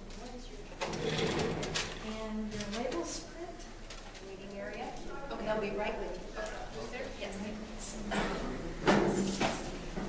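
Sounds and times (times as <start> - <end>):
indistinct voices in a room: 0.0 - 10.0.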